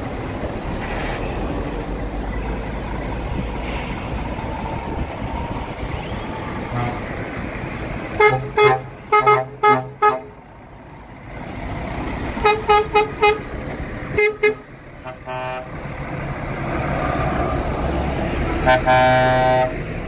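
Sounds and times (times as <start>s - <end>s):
diesel truck engines: 0.0s - 20.0s
truck horn toots: 6.7s - 7.2s, 8.1s - 10.4s, 12.4s - 13.5s, 14.1s - 15.8s, 18.6s - 19.8s
long horn blast: 6.7s - 7.3s, 8.1s - 10.4s, 12.4s - 13.5s, 14.1s - 15.8s, 18.6s - 19.8s.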